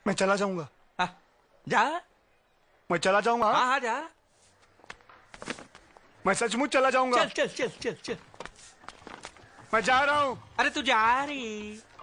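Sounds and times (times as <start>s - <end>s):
faint footsteps: 4.2s - 6.3s, 7.7s - 12.0s.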